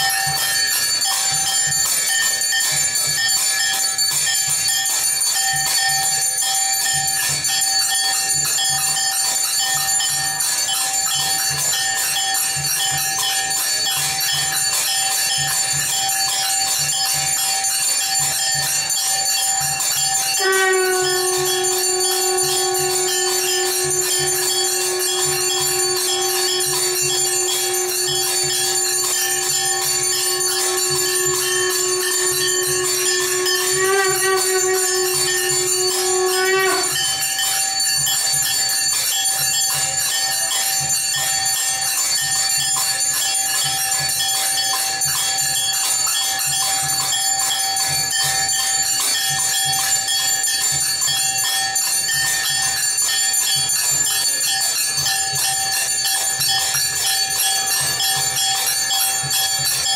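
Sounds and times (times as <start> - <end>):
bells ringing and jingling: 0.0 - 59.9
long held steady tone: 0.0 - 59.9
low steady beat: 20.4 - 36.9.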